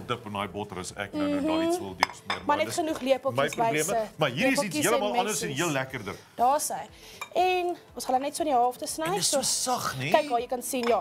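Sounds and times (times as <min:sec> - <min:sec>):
cutlery and dishes clattering: 0:10.7 - 0:11.0.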